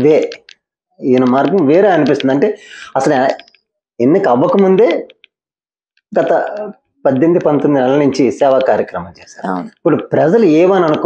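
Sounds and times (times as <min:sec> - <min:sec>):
person speaking: 0:00.0 - 0:05.3, 0:06.1 - 0:11.0.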